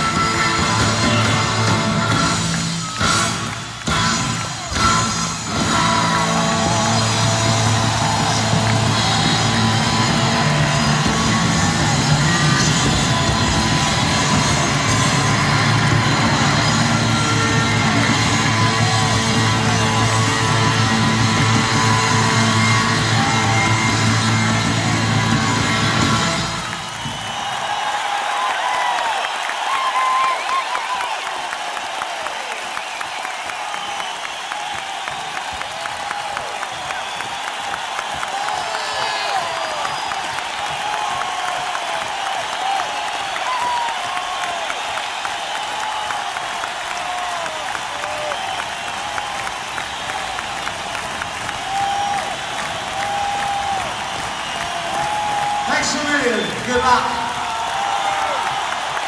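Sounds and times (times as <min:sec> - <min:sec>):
live rock band playing: 0:00.0 - 0:26.8
crowd cheering and whooping: 0:00.0 - 0:59.0.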